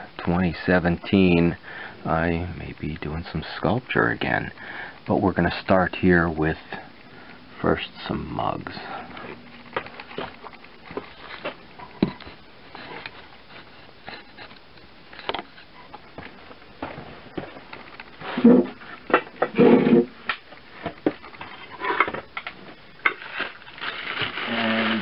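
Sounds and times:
plastic rustling: 0:09.2 - 0:15.7, 0:20.7 - 0:25.0.

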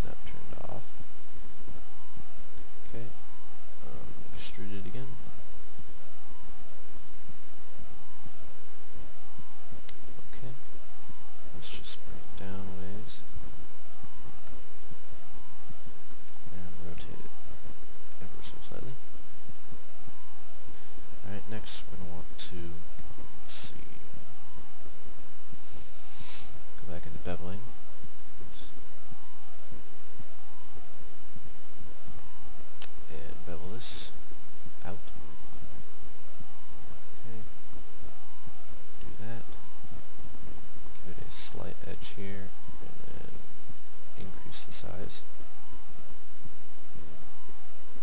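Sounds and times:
steady background hiss: 0:00.0 - 0:48.0.

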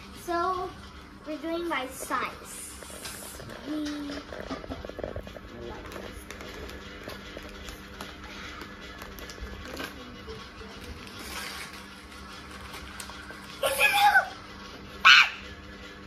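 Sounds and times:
quiet background music: 0:00.0 - 0:16.0
wrapping paper crinkling and tearing: 0:02.6 - 0:14.4.

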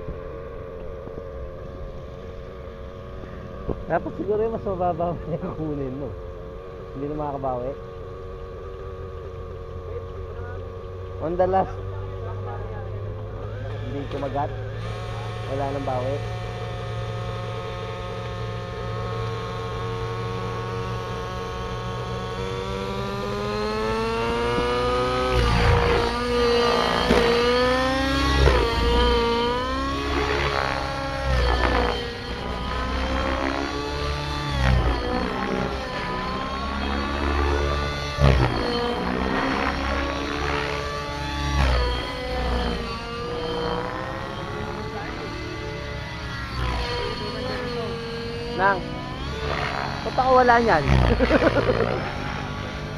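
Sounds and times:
model helicopter engine and rotors: 0:00.0 - 0:52.9.

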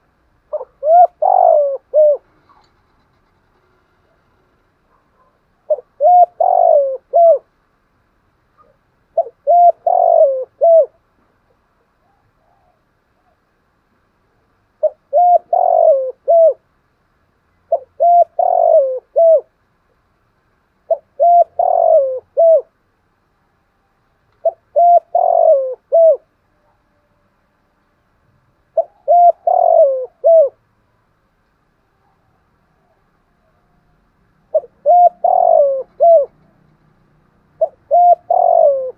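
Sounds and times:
dove cooing: 0:00.5 - 0:03.1, 0:04.9 - 0:07.5, 0:08.6 - 0:13.4, 0:14.8 - 0:16.6, 0:17.7 - 0:19.5, 0:20.9 - 0:22.8, 0:24.4 - 0:26.8, 0:28.7 - 0:30.6, 0:32.0 - 0:38.9.

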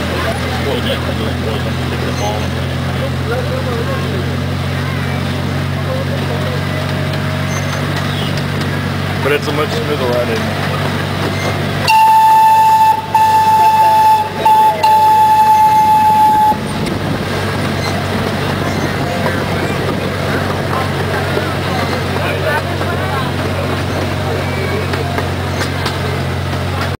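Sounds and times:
train motor droning: 0:10.0 - 0:26.9
train horn: 0:11.9 - 0:16.8.

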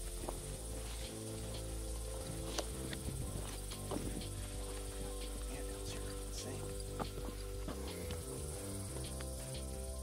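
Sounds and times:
footsteps on a dirt trail: 0:00.0 - 0:10.0
high insect buzz: 0:00.0 - 0:10.0
sustained low music notes: 0:00.0 - 0:10.0.

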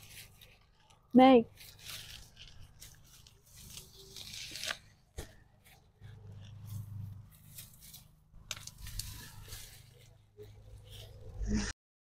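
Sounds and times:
rustling of leaves and stalks: 0:00.0 - 0:11.5.

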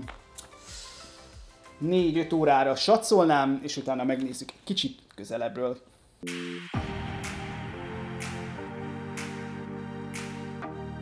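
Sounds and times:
man talking: 0:01.8 - 0:05.9.

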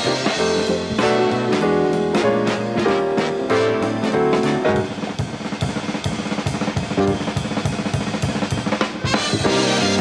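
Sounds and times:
jazz drum kit break: 0:00.0 - 0:10.0.

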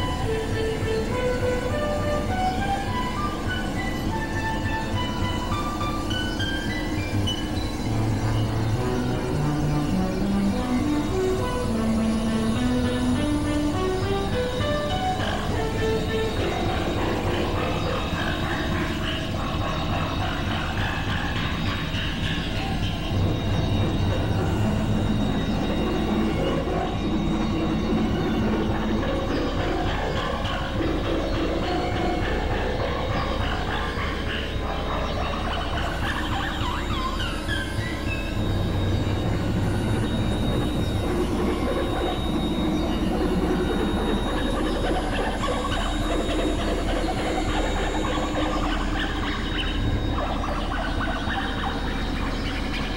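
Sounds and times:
synthesizer drones: 0:00.0 - 0:52.9.

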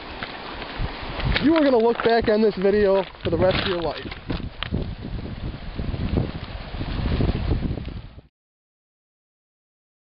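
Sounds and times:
river water rushing: 0:00.0 - 0:07.8
wind buffeting microphone: 0:00.5 - 0:08.3.

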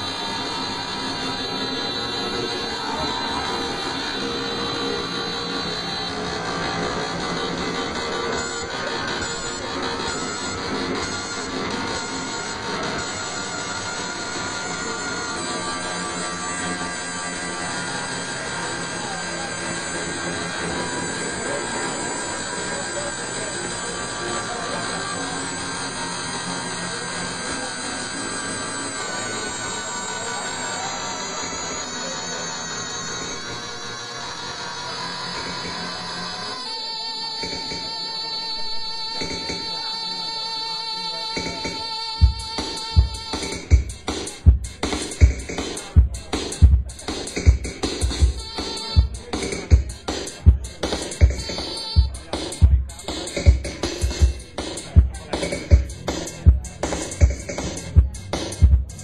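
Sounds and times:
electronic music held tones: 0:00.0 - 0:59.0.

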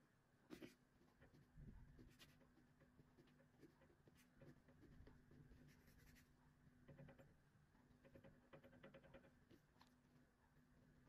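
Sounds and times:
faint steady hum: 0:00.0 - 0:11.0
ballpoint pen scratching on paper: 0:00.5 - 0:06.4.

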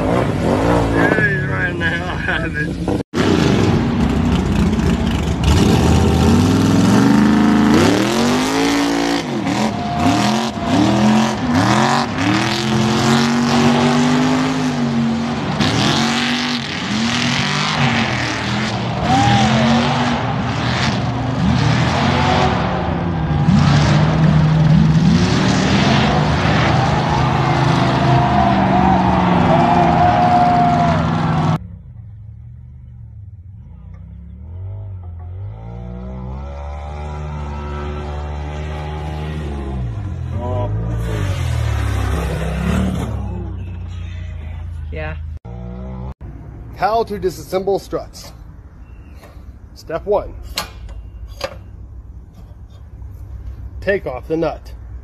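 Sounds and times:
truck engines revving: 0:00.0 - 0:55.0.

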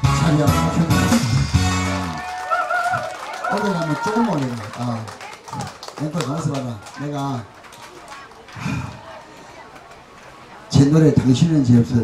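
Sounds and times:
man's voice over loudspeaker: 0:00.0 - 0:01.2, 0:06.0 - 0:07.5, 0:10.7 - 0:12.0.

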